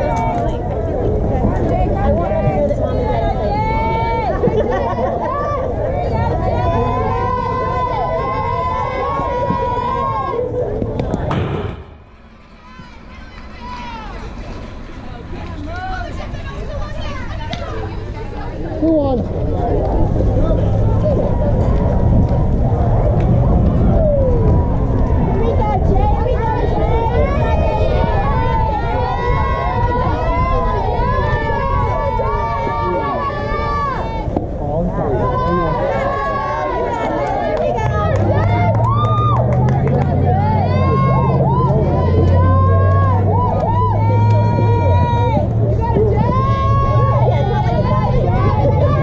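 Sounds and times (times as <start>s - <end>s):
children shouting and cheering: 0.0s - 34.4s, 35.0s - 49.0s
steady low rumble: 0.0s - 49.0s
voices calling out: 0.0s - 49.0s.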